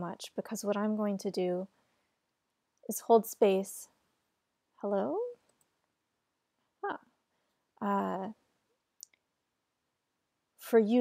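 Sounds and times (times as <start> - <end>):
woman's voice: 0.0 - 1.7, 2.9 - 3.9, 4.8 - 5.4, 7.8 - 8.4, 10.6 - 11.0.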